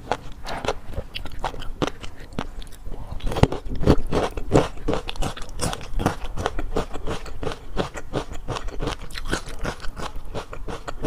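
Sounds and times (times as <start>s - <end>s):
wet chewing clicks and pops: 0.0s - 11.0s.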